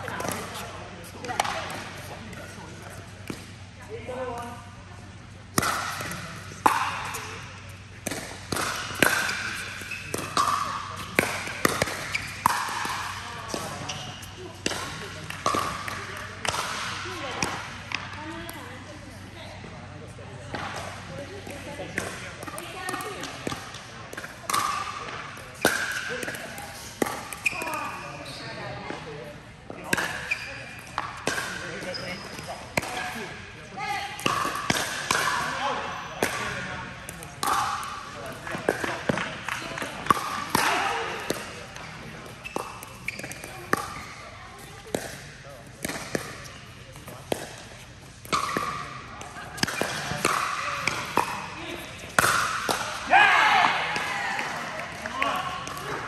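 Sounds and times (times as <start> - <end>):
ball bouncing on court: 5.4 - 18.6, 20.5 - 29.0, 29.7 - 33.3, 34.2 - 56.0.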